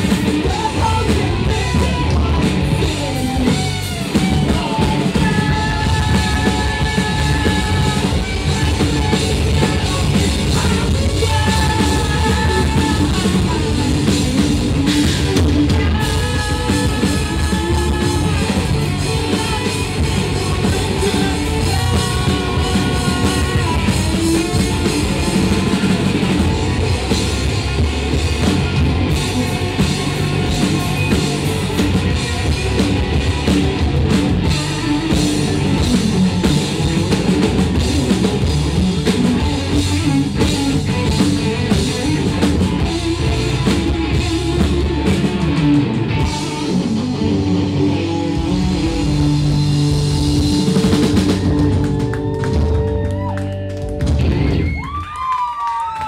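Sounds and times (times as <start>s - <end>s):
distorted electric guitars: 0.0s - 56.0s
drum kit: 0.0s - 56.0s.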